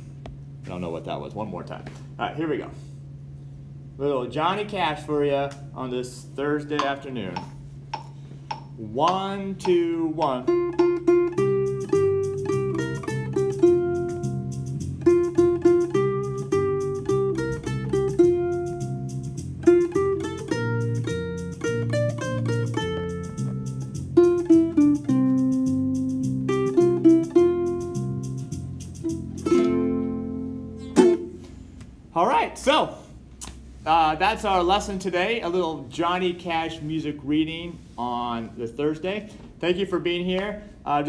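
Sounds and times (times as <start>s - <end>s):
backing track with bass and drums: 6.7s - 32.1s
ukulele picking a melody: 9.6s - 31.5s
ukulele strummed chord: 10.3s - 31.5s.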